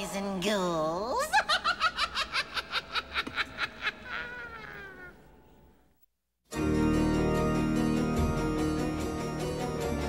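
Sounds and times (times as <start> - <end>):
rapid high cackling laugh: 1.3 - 5.2.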